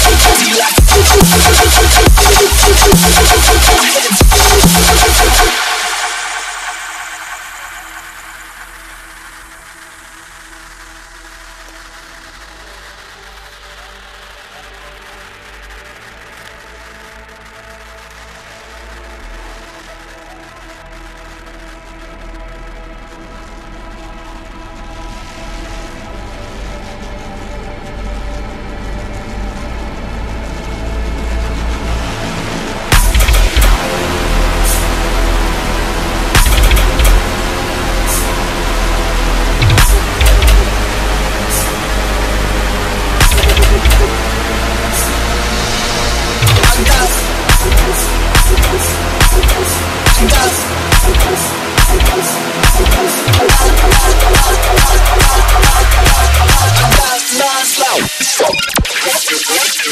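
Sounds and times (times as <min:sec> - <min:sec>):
sustained synth chords: 0:00.0 - 0:10.2, 0:29.3 - 0:57.0
heavy bass drop: 0:00.0 - 0:15.1, 0:29.1 - 0:59.9.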